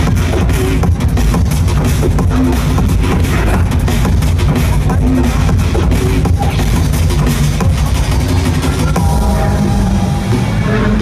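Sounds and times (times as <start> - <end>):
drum and bass music: 0.0 - 11.0.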